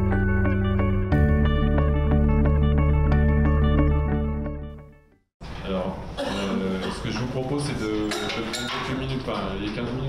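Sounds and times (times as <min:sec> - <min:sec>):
man speaking through microphone: 0:05.6 - 0:10.0.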